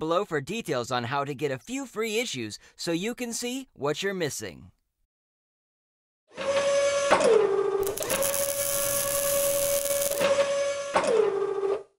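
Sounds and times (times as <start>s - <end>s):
crackling welding sparks: 7.8s - 10.3s
mechanical motor whine: 7.8s - 10.8s.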